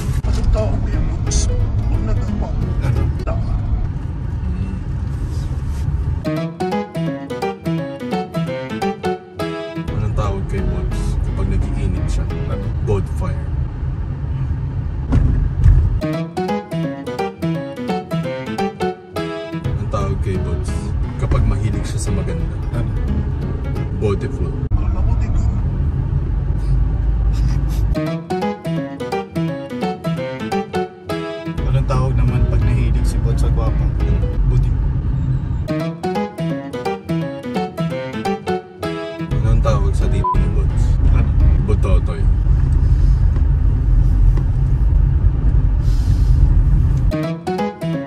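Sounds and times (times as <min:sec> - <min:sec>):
car interior rumble: 0:00.0 - 0:06.3, 0:09.9 - 0:16.0, 0:19.7 - 0:28.0, 0:31.6 - 0:35.7, 0:39.3 - 0:47.2
road noise: 0:00.0 - 0:48.0.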